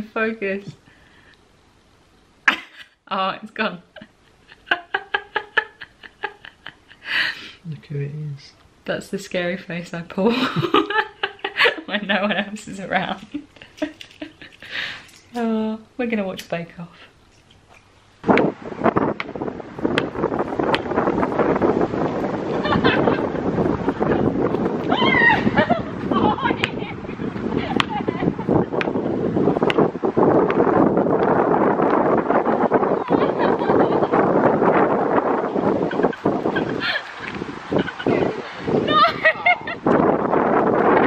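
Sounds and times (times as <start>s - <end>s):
wind buffeting microphone: 18.1s - 41.0s.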